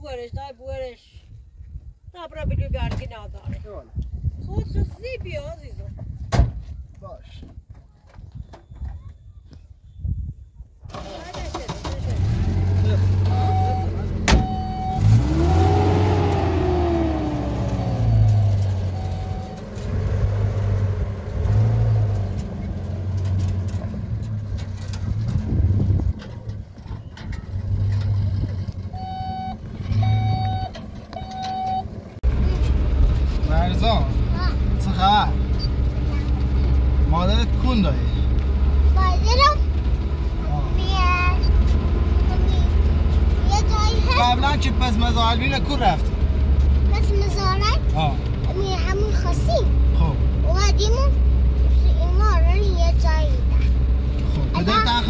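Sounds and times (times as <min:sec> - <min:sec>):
truck driving rumble from cab: 0:10.8 - 0:55.0
short beeps: 0:13.3 - 0:15.2, 0:18.8 - 0:19.6, 0:29.0 - 0:31.9.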